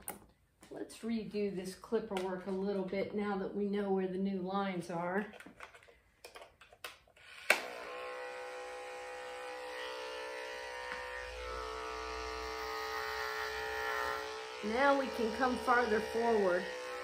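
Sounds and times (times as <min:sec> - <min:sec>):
electric clipper buzzing: 0:07.2 - 0:17.0.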